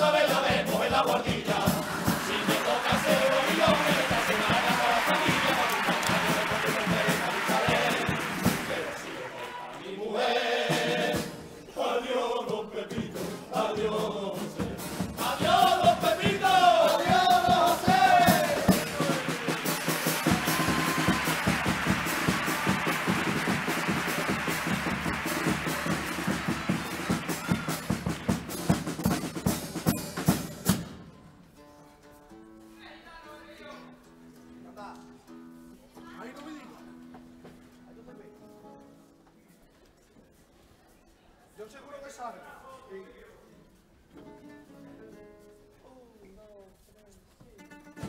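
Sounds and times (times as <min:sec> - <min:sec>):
bass drum and snare drum: 0:00.0 - 0:09.2, 0:13.0 - 0:31.1
chorus singing: 0:00.0 - 0:28.8.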